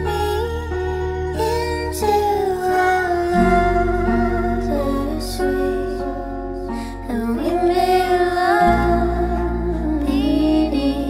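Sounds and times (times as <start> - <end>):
deep bass note: 0.0 - 11.0
woman singing gentle melody: 0.0 - 11.0.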